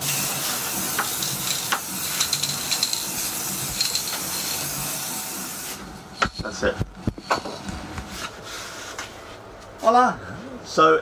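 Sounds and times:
aerosol can spraying hiss: 0.0 - 5.8.

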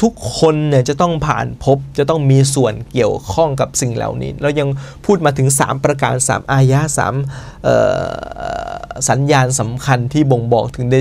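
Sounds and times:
man's creaky throat sound: 7.7 - 9.0.

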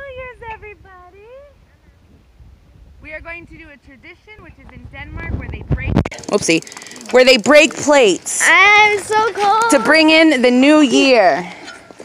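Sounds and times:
wind rumble on microphone: 0.0 - 6.2.

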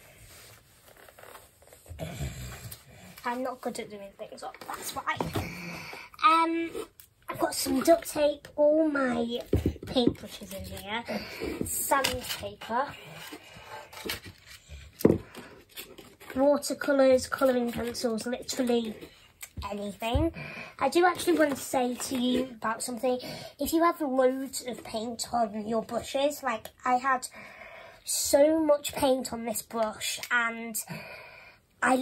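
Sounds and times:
art supplies rustling: 2.6 - 6.0, 6.6 - 20.3, 20.9 - 22.9.

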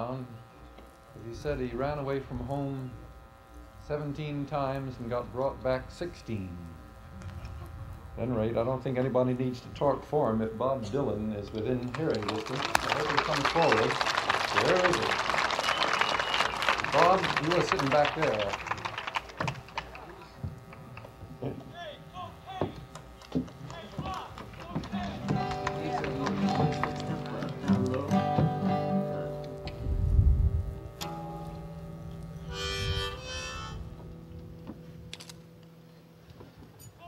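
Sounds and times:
murmur of voices: 5.0 - 29.8
harmonica blow: 13.2 - 19.3, 20.0 - 36.2
acoustic guitar picking and strumming: 23.4 - 35.8.

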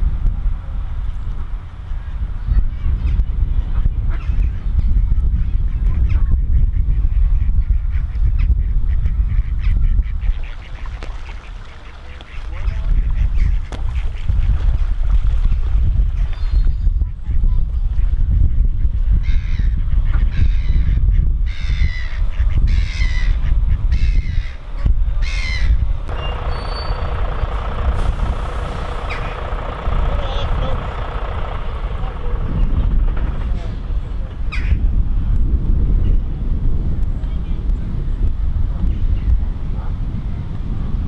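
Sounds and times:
wind rumbling on microphone: 0.0 - 41.0
gulls calling: 5.4 - 17.4, 21.6 - 34.9
lorry diesel engine running: 26.1 - 35.7.

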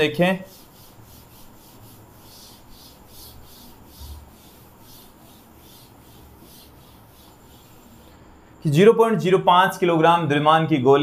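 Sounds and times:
duster scrubbing a chalkboard: 0.0 - 8.3.

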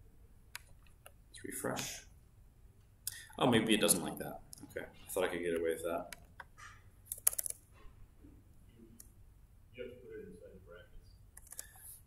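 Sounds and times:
keyboard and mouse clicks: 6.1 - 7.6, 11.3 - 11.9.

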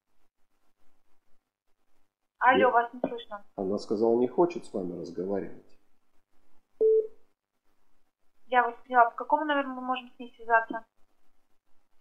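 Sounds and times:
telephone beep: 6.8 - 7.2.

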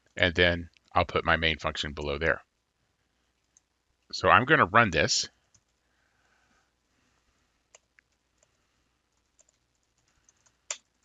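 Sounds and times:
keyboard typing: 5.4 - 5.8, 7.7 - 11.0.

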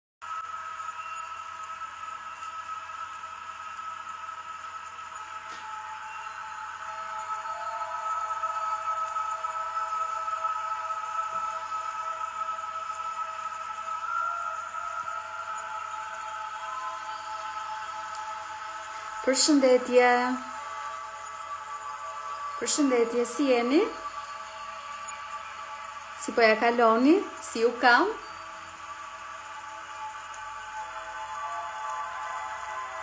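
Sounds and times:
soft ambient music: 0.2 - 33.0.

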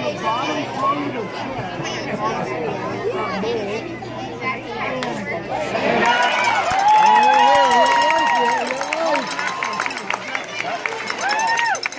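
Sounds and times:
spectators shouting: 5.6 - 11.9.

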